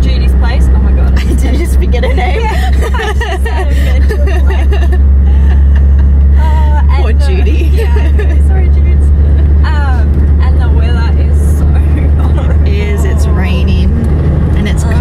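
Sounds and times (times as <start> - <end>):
women laughing and chatting: 0.0 - 14.0, 14.6 - 15.0
car engine and tyres drone: 0.0 - 15.0.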